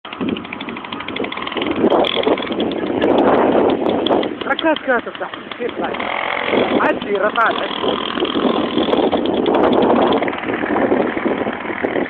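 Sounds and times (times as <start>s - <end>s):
moped engine rattling: 0.0s - 12.0s.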